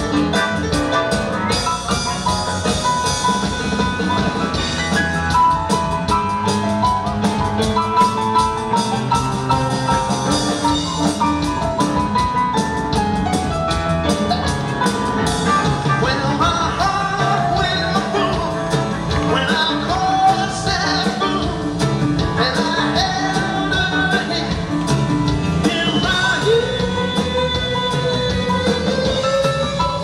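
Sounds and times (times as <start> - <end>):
live rock band playing: 0.0 - 30.0
man singing into microphone: 15.9 - 30.0.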